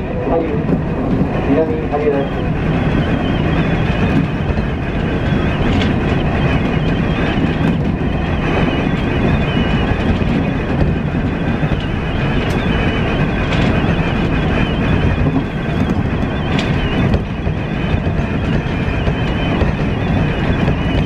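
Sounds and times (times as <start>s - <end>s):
train wheels rumbling on rails: 0.0s - 21.0s.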